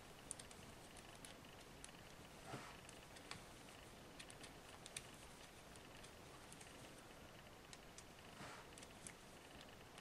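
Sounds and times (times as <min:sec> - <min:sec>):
knitting needles clicking: 0:00.2 - 0:10.0.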